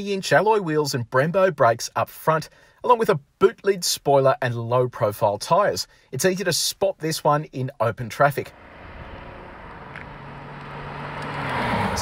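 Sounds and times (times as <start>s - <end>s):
car engine: 8.4s - 12.0s.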